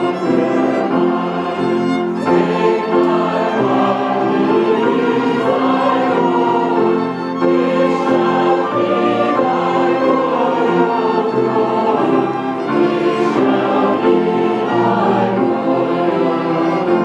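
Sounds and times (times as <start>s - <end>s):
string ensemble playing slow piece: 0.0s - 17.0s.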